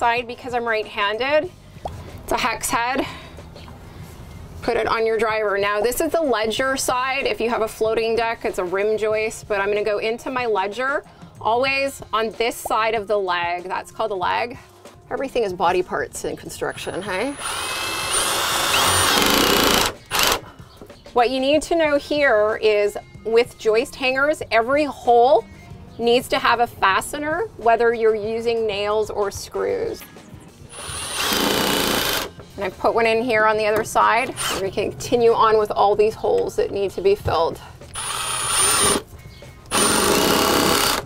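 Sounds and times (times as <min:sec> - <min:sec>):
impact driver hammering screw: 0:17.3 - 0:20.4, 0:30.7 - 0:32.3, 0:37.9 - 0:39.1, 0:39.7 - 0:41.0.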